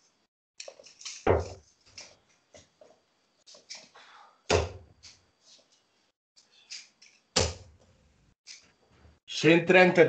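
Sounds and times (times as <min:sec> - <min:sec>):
darts clicking and clinking: 0:00.6 - 0:02.2.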